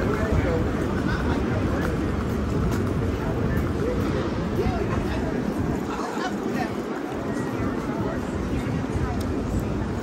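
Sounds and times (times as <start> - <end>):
pedestrians talking: 0.0 - 10.0
traffic rumble: 0.0 - 10.0.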